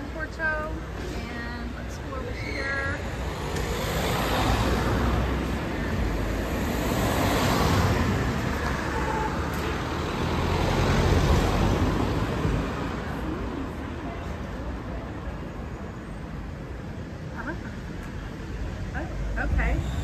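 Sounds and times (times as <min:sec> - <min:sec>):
cars driving past: 0:00.0 - 0:20.0.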